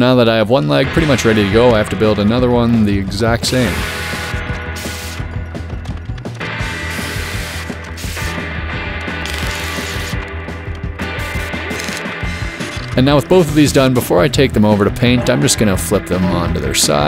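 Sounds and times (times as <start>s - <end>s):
background music: 0.0s - 17.0s
chop saw cutting steel: 3.5s - 5.3s, 6.5s - 8.4s, 9.2s - 10.2s
welding: 3.5s - 13.1s.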